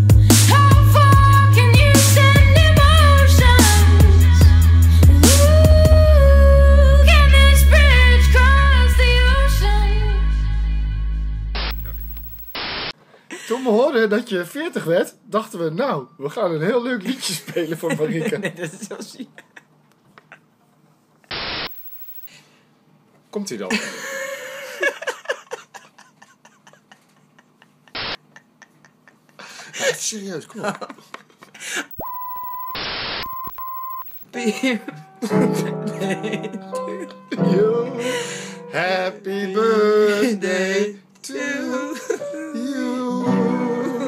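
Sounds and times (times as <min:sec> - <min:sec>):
static hiss burst: 0:11.6 - 0:13.0, 0:21.3 - 0:22.0, 0:28.0 - 0:28.2, 0:32.6 - 0:33.5
high test-tone beep: 0:11.7 - 0:12.7, 0:21.6 - 0:22.3, 0:31.9 - 0:34.3.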